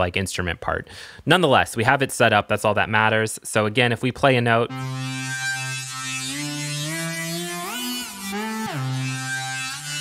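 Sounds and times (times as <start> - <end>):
buzzy synthesizer notes sliding: 4.6 - 10.0.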